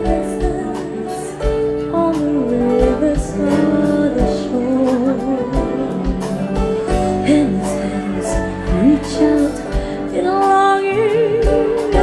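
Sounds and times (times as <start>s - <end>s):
keyboard: 0.0s - 12.0s
woman singing: 0.0s - 12.0s.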